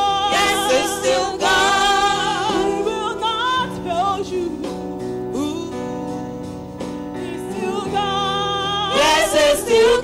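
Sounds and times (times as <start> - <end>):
gospel singing with vibrato: 0.0 - 6.4, 7.1 - 10.0.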